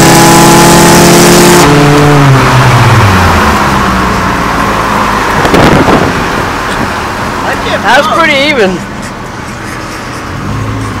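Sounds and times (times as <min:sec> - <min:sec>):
car engines running hard: 0:00.0 - 0:11.0
tyre and road noise: 0:00.0 - 0:11.0.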